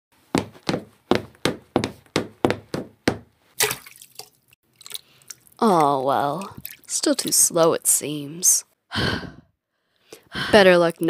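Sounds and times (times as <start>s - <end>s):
heavy running footsteps: 0.2s - 3.4s.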